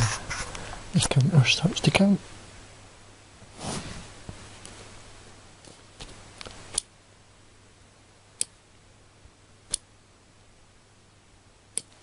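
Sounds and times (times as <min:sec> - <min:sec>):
soft rustle: 0:03.4 - 0:04.9.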